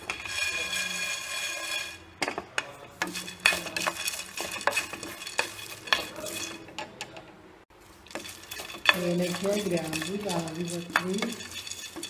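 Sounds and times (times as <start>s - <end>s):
scraping strokes in pan: 0.0s - 6.7s, 7.7s - 12.0s
spices rattling in metal pan: 0.0s - 7.0s, 7.8s - 12.0s.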